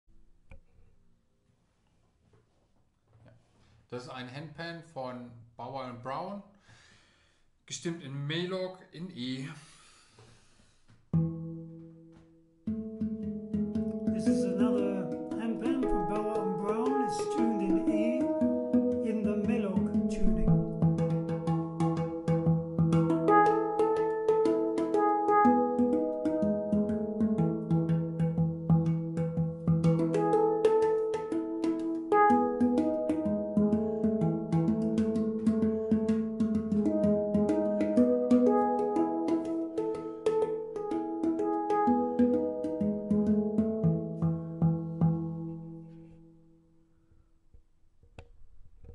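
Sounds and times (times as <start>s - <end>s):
light percussive taps: 10.2s - 45.7s
handpan played by hand: 11.1s - 46.2s.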